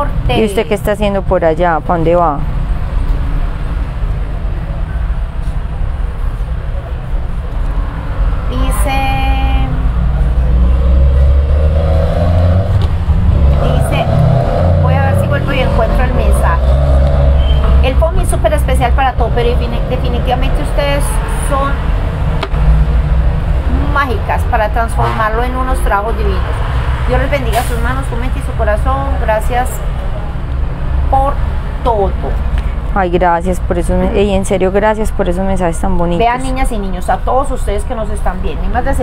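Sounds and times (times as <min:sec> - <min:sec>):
indistinct talking: 0:00.0 - 0:11.8, 0:12.5 - 0:39.0
steady low rumble: 0:00.0 - 0:39.0
short pitched tone: 0:17.2 - 0:17.8.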